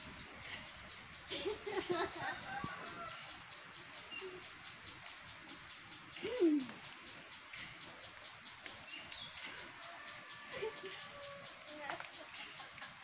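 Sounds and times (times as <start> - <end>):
background hiss: 0.0 - 13.0
faint high bird chirps: 4.0 - 12.6
low falling bird call: 6.1 - 7.8.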